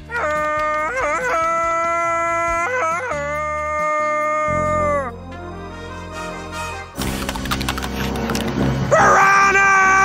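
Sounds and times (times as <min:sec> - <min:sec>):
background music: 0:00.0 - 0:10.0
man yelling with yodelling warbles: 0:09.0 - 0:10.0.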